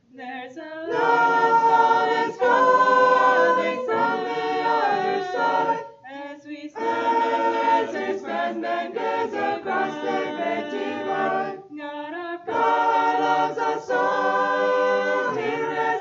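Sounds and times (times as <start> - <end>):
mixed choir singing a cappella: 0.8 - 16.0.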